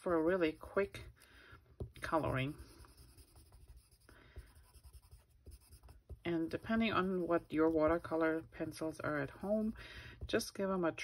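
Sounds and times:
pencil scratching on cardstock: 2.0 - 10.8.

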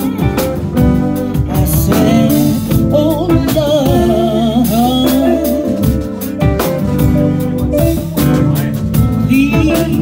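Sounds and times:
drum kit beat: 0.0 - 10.0
electric guitars: 0.0 - 10.0
woman singing into microphone: 1.3 - 6.1, 9.2 - 10.0.

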